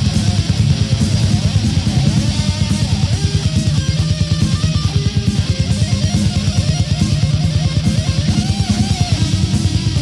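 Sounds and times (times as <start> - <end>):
death metal band playing: 0.0 - 10.0.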